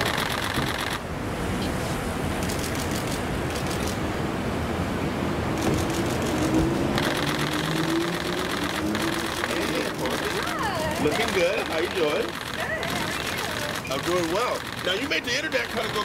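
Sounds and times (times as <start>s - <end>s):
traffic: 0.0s - 16.0s
fast even ticking: 5.8s - 16.0s.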